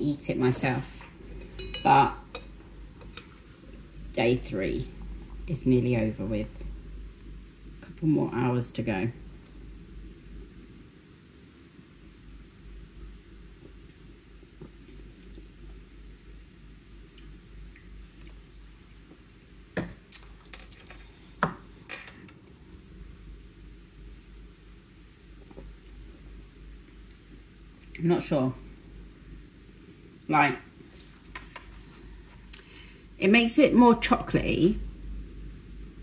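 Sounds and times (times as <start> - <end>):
low room hum: 0.0 - 36.0.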